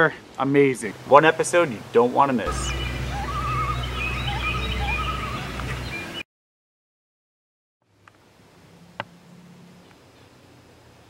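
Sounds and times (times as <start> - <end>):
low hum: 2.5 - 5.9
birds chirping and warbling: 2.5 - 6.2.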